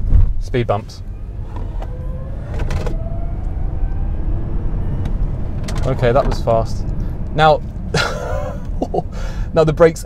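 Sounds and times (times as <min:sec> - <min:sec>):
road and tyre rumble: 0:00.0 - 0:10.0
electric motor whining: 0:01.0 - 0:05.8.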